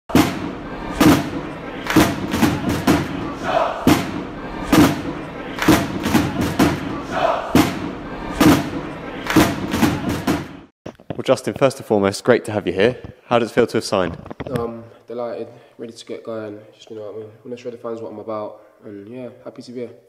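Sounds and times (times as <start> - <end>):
crowd chanting: 0.1 - 10.7
heavy thudding beat: 0.1 - 10.7
shouted calls: 3.3 - 3.9, 7.0 - 7.6.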